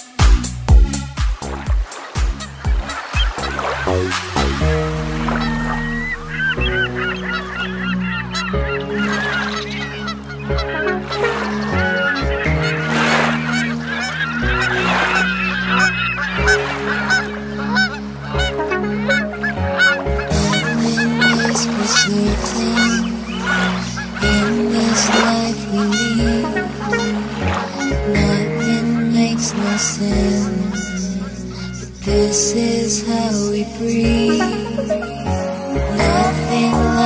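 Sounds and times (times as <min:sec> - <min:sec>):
background music with sustained chords: 0:00.0 - 0:37.0
waterfowl calls: 0:01.4 - 0:32.1.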